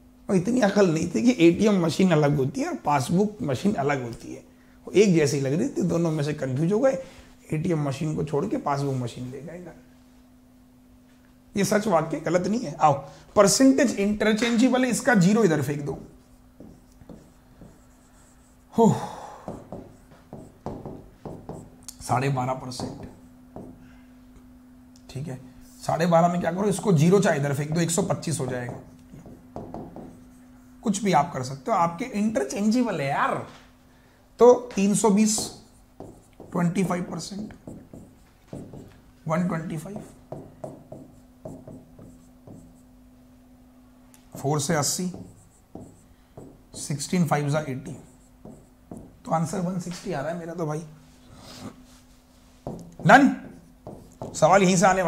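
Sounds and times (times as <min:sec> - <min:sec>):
low steady hum: 0:00.0 - 0:55.0
stylus writing on glass: 0:15.2 - 0:18.7, 0:19.5 - 0:21.8, 0:26.6 - 0:30.5, 0:34.9 - 0:43.0, 0:44.7 - 0:49.3, 0:52.6 - 0:55.0.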